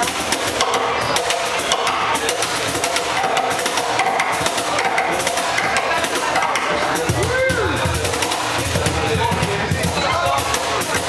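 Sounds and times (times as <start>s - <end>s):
cajon beat: 0.0s - 11.0s.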